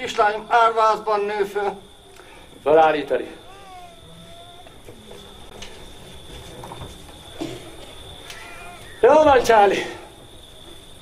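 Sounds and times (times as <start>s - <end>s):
shuffling and handling noise: 3.5s - 8.0s.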